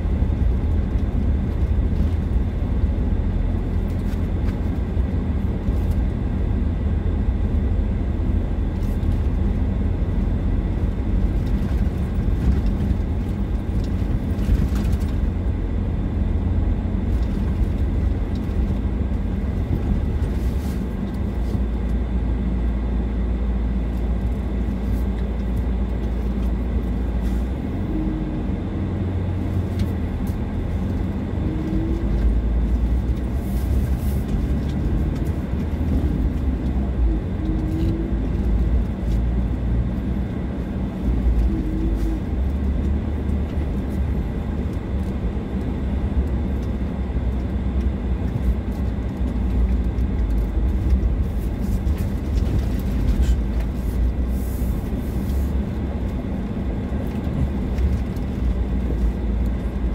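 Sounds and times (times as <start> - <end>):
engine and tyres rumbling on gravel: 0.0 - 59.9.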